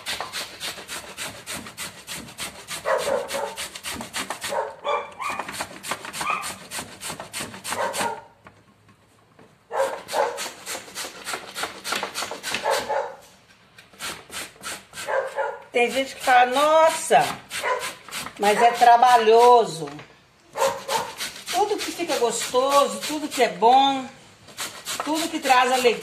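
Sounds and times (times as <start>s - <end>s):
papaya rasped on metal grater: 0.0s - 8.2s, 10.0s - 12.9s, 13.9s - 19.7s, 20.6s - 23.7s, 24.5s - 26.0s
short pitched barking calls: 4.5s - 5.4s, 9.7s - 10.4s, 15.0s - 15.6s, 17.6s - 18.0s, 20.5s - 21.2s.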